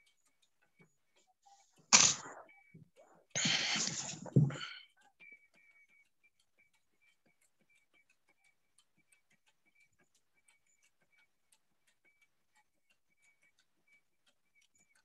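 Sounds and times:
faint irregular ticks: 0.0s - 15.0s.

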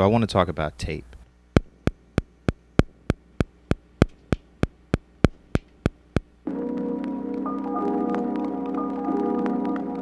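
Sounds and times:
low mains hum: 0.0s - 10.0s
steady clicking: 1.6s - 10.0s.

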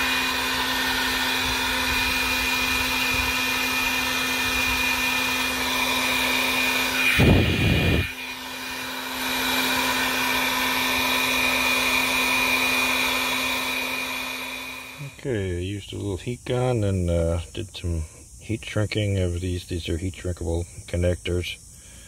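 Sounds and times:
heat gun fan blowing: 0.0s - 16.2s.

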